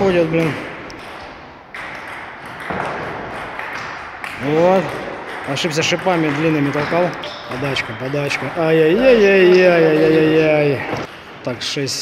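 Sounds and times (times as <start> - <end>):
table tennis ball knocking: 0.2 - 10.3.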